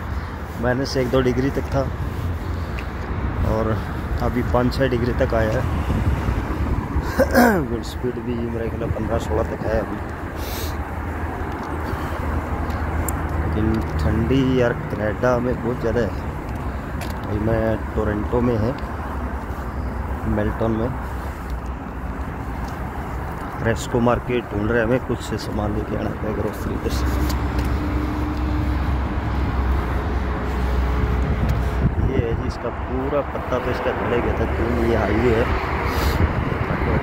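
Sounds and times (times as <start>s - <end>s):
road traffic rumble: 0.0s - 37.0s
vehicle hum: 0.0s - 37.0s
tyres hissing: 9.9s - 14.0s.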